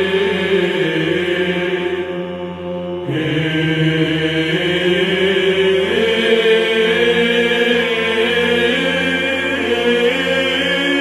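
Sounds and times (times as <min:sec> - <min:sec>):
choir chanting: 0:00.0 - 0:02.4, 0:03.0 - 0:11.0.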